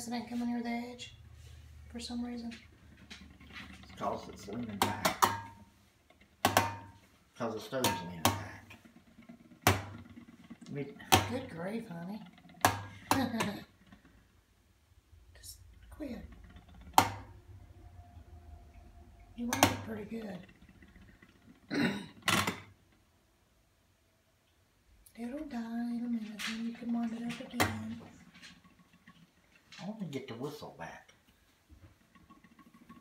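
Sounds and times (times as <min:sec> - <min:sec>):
spinning top clicking on stovetop: 0:03.0 - 0:14.4, 0:15.5 - 0:18.3, 0:19.2 - 0:22.8.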